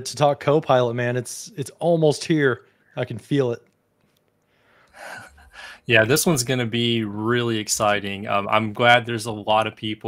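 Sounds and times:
man speaking: 0.0 - 3.7, 5.0 - 10.0
man breathing in: 4.4 - 5.9.

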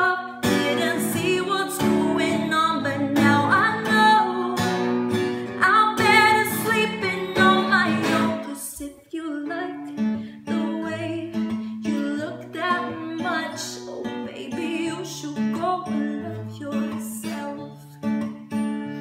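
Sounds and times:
acoustic guitar strumming: 0.0 - 8.8, 9.6 - 19.0
woman singing pop song: 0.0 - 18.0.

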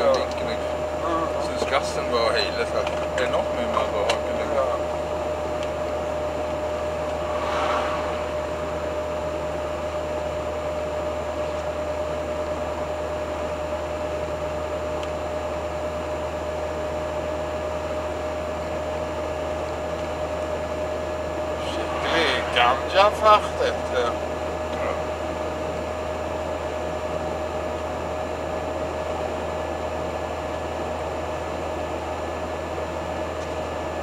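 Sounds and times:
engine drone: 0.0 - 28.2
road rumble: 6.4 - 10.4, 21.5 - 24.4.

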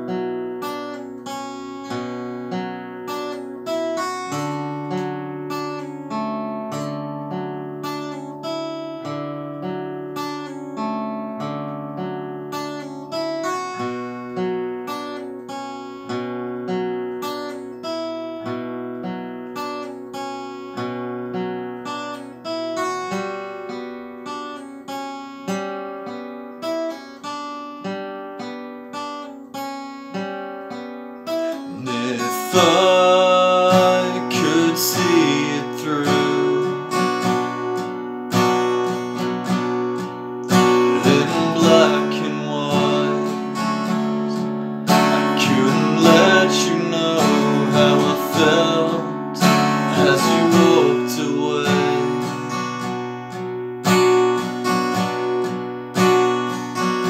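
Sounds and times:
acoustic guitar picked chords: 0.0 - 57.0.

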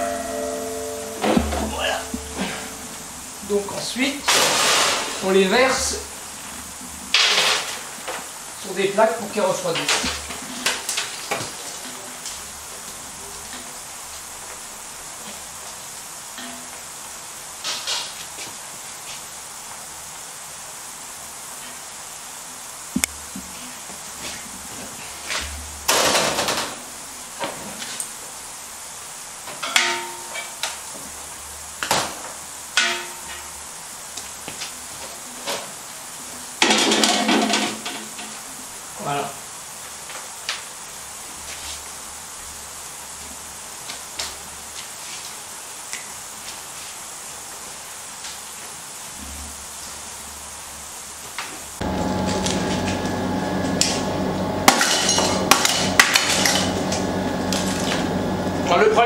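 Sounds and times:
low kitchen hum: 0.0 - 5.4, 51.8 - 59.0.

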